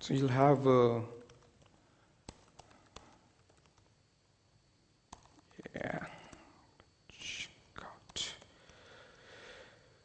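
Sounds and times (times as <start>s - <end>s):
laptop keyboard clicks: 1.2s - 3.9s, 5.1s - 5.4s
man whispering: 5.5s - 8.6s.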